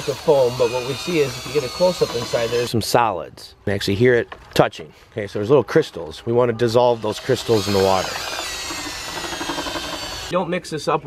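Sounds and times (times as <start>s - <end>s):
electric drill motor whine: 0.0s - 2.7s, 7.2s - 10.3s.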